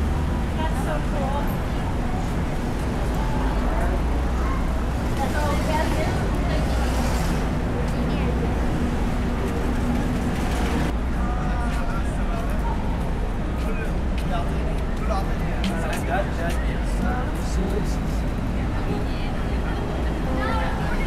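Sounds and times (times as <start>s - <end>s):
low rumble of road traffic: 0.0s - 21.0s
pedestrians talking: 0.0s - 21.0s.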